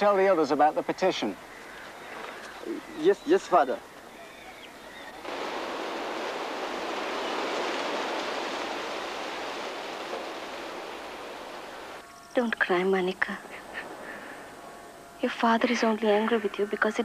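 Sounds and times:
rushing hiss of water: 5.2 - 12.0.

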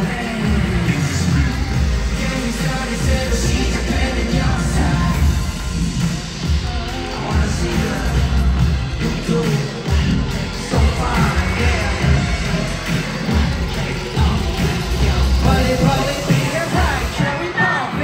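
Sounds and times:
heavy pulsing bass beat: 0.0 - 18.0
live pop music over sound system: 0.0 - 18.0.

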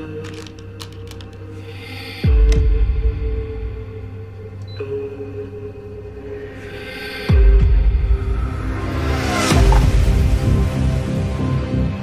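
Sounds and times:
low drone: 1.4 - 12.0.

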